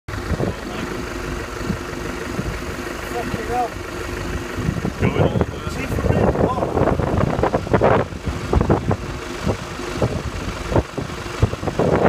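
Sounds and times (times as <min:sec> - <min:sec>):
car engine idling: 0:00.1 - 0:12.0
dull engine knocks: 0:00.1 - 0:12.0.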